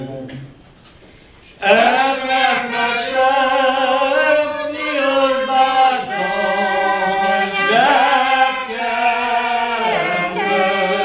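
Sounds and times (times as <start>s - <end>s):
group singing unaccompanied folk song: 1.6s - 11.0s.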